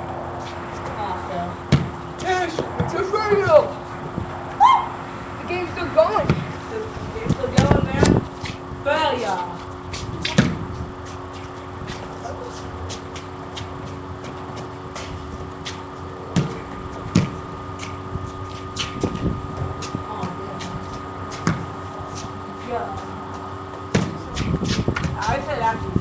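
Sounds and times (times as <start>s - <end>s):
ball bouncing: 1.7s - 3.6s, 6.0s - 6.6s, 7.3s - 8.6s, 9.4s - 25.5s
ball hitting basketball hoop: 1.7s - 3.7s, 6.1s - 6.6s, 7.4s - 8.2s, 9.9s - 10.7s, 15.7s - 18.0s, 18.8s - 21.8s, 23.7s - 25.4s.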